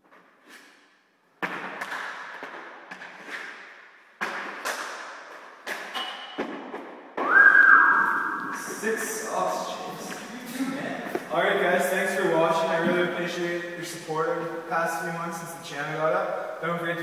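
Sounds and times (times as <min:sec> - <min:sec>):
hockey stick striking puck: 0:01.4 - 0:07.0
loud high held tone: 0:07.2 - 0:09.1.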